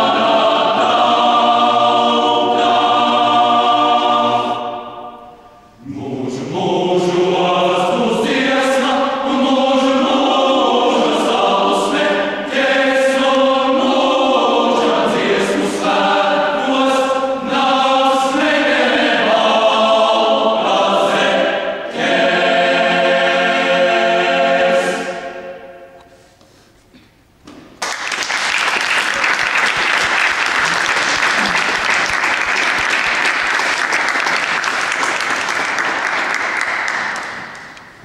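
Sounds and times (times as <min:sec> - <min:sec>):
choir singing in chords: 0:00.0 - 0:26.2.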